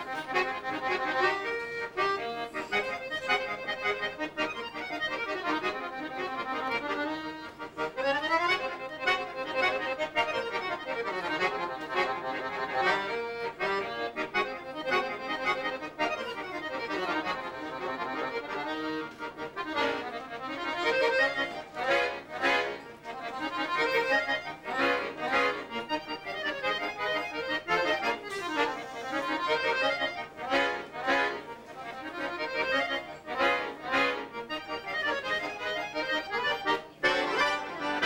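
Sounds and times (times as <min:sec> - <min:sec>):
piano accordion playing fast: 0:00.0 - 0:38.0.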